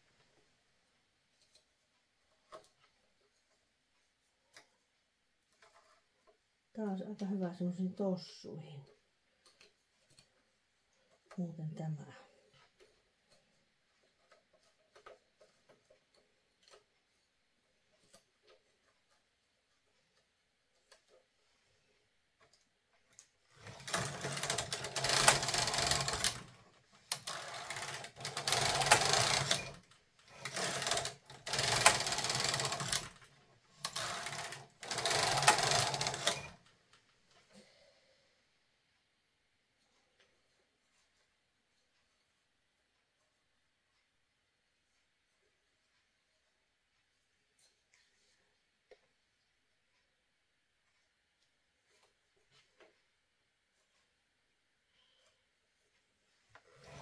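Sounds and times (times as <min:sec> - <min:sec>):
knitting machine carriage rasping: 0:05.5 - 0:06.4, 0:23.2 - 0:36.7, 0:56.5 - 0:57.0.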